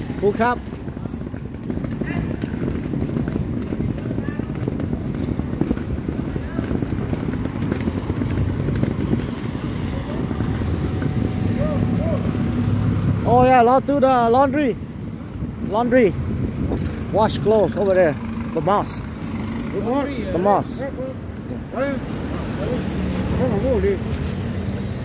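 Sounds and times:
traffic rumble: 0:00.0 - 0:25.0.

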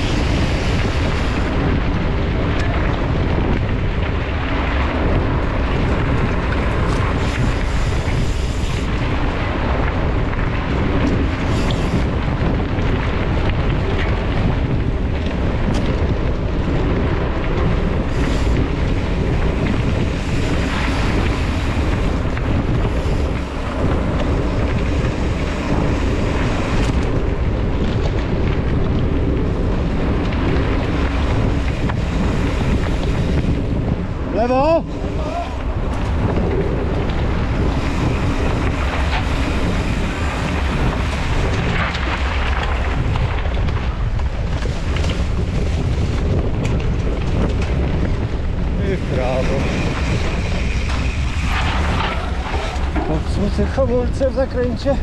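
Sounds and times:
bike rattling over ground: 0:00.0 - 0:55.0
wind rumbling on microphone: 0:00.0 - 0:55.0.

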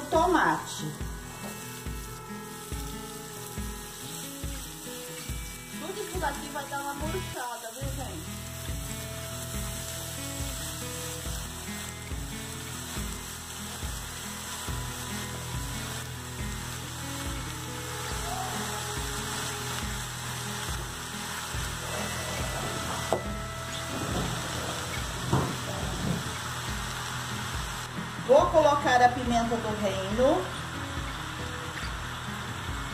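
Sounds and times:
background music with beat: 0:00.0 - 0:28.5, 0:30.1 - 0:32.9
vegetables sizzling in oil: 0:00.0 - 0:32.9.

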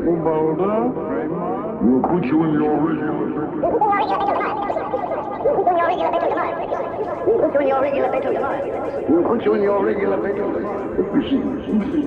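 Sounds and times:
warped looped voice sample: 0:01.9 - 0:09.2.

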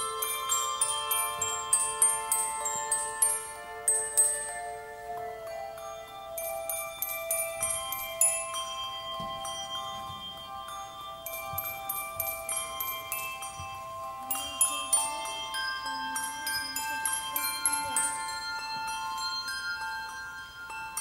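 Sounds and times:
handbells ringing a slow melody: 0:00.0 - 0:21.0.

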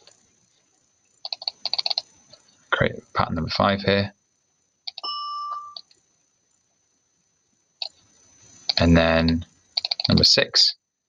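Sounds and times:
soft mouse clicks: 0:01.2 - 0:02.4, 0:04.9 - 0:05.1, 0:08.6 - 0:10.2
high bell synth note: 0:05.0 - 0:05.8.

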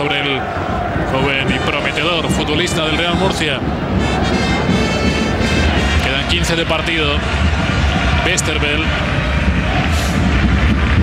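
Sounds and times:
stadium crowd: 0:00.0 - 0:11.0
trumpets playing: 0:02.7 - 0:06.6.

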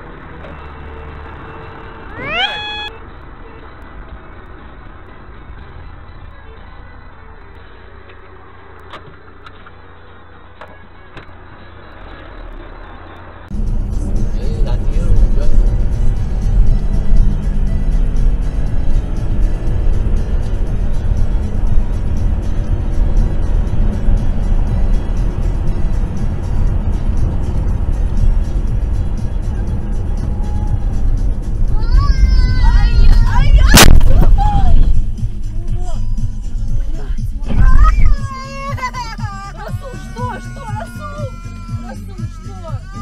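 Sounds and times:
faint road noise: 0:00.0 - 0:43.0
high squealing: 0:02.1 - 0:03.0
loud music with heavy bass: 0:32.5 - 0:43.0
loud collision bang: 0:33.7 - 0:34.4.

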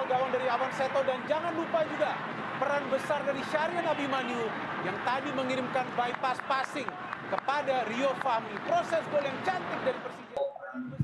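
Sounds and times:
broadcast background noise: 0:00.0 - 0:11.0
commentator talking: 0:00.0 - 0:11.0.

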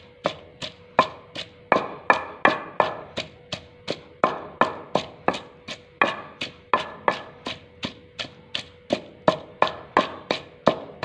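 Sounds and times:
wooden pestle pounding in mortar: 0:00.0 - 0:11.0.

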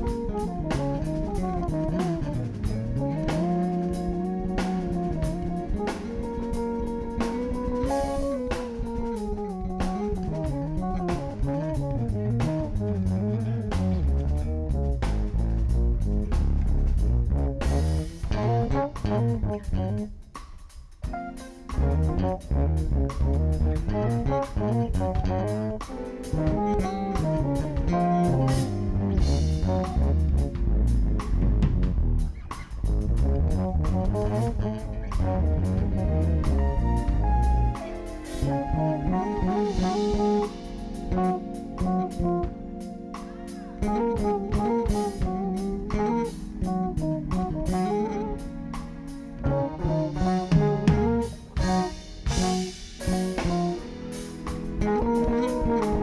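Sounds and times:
electric bass guitar solo: 0:00.0 - 0:20.1, 0:21.1 - 0:53.9, 0:54.6 - 0:56.0
drum kit: 0:00.0 - 0:56.0.

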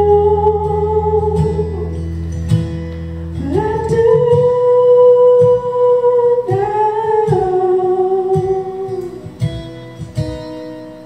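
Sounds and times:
man singing wordless notes: 0:00.0 - 0:02.0, 0:03.4 - 0:09.4
strummed acoustic guitar: 0:00.0 - 0:11.0.

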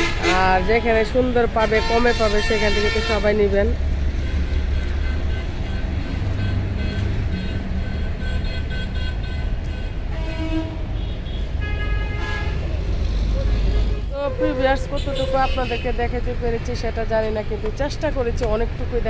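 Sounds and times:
vehicle horns tooting: 0:00.0 - 0:03.5, 0:04.2 - 0:12.7, 0:13.4 - 0:16.0
road traffic rumble: 0:00.0 - 0:19.0.

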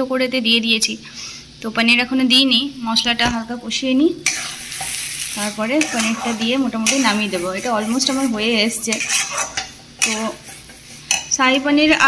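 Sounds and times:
light sizzle: 0:00.7 - 0:12.0
spatula scraping steel pan: 0:04.3 - 0:11.7.

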